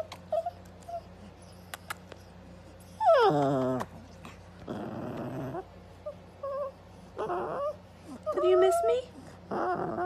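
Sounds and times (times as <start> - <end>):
dog whining and moaning: 0.0 - 10.0.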